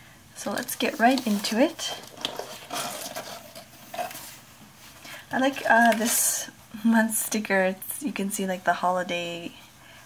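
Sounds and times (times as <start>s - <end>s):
cardboard box being opened: 1.0s - 4.4s.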